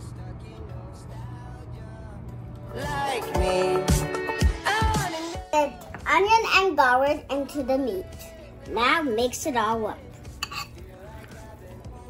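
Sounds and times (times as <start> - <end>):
quiet background music: 0.0 - 12.0
spoon scraping a bowl: 10.1 - 11.7.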